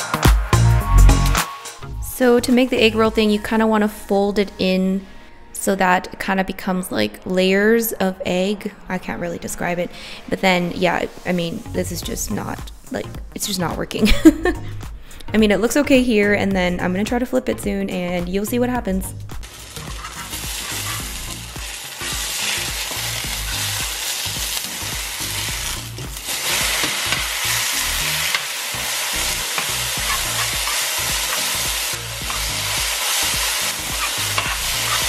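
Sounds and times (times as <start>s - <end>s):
egg sizzling in frying pan: 19.4s - 35.0s
spatula scraping pan: 19.4s - 35.0s.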